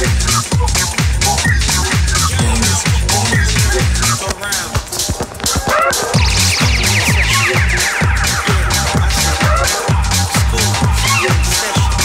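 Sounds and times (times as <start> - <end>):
house music mix: 0.0 - 12.0.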